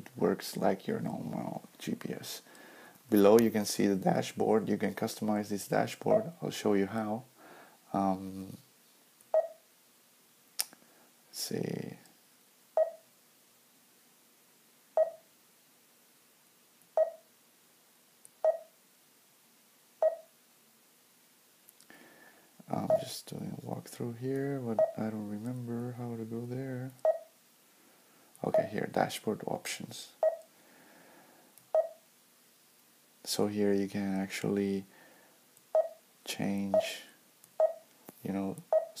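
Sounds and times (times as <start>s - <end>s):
touchscreen short beeps: 9.4s - 9.6s, 12.8s - 13.0s, 15.0s - 15.2s, 17.0s - 17.2s, 18.4s - 18.7s, 20.0s - 20.3s, 31.8s - 32.0s.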